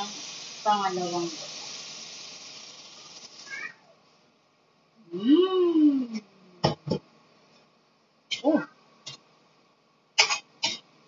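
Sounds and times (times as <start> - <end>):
vegetables sizzling in a pot: 0.0 - 3.9.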